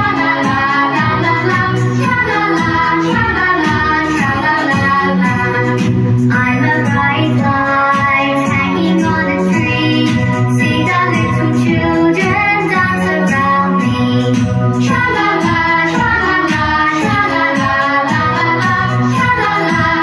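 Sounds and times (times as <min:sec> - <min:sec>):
backing music with beat: 0:00.0 - 0:20.0
child singing: 0:00.0 - 0:20.0.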